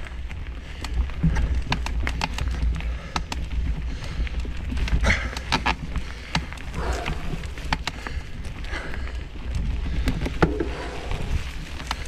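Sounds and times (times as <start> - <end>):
bike clicks and rattles: 0.0 - 12.0
wind rumble on microphone: 0.0 - 12.0.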